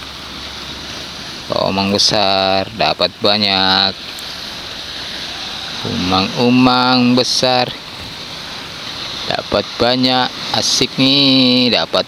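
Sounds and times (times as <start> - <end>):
sea surf rushing: 0.0 - 12.0.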